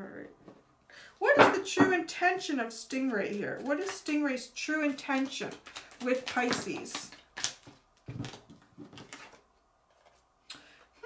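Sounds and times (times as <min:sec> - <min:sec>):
cards rustling: 0:02.9 - 0:10.2.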